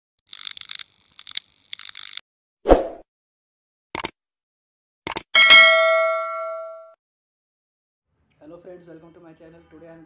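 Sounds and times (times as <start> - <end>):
bright bell ding: 5.4 - 7.0.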